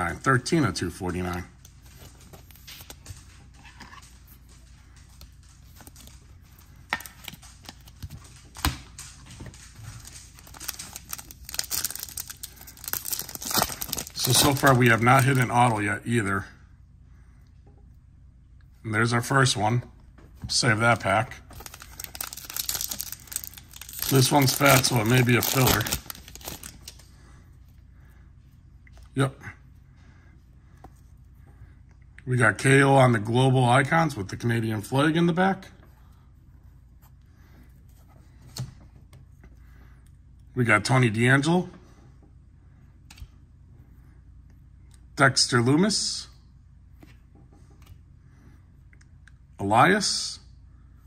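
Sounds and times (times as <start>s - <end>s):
plastic card sleeve rustling: 1.1s - 15.8s, 20.9s - 27.1s
foil wrapper crinkling and tearing: 9.7s - 15.5s, 21.5s - 27.0s.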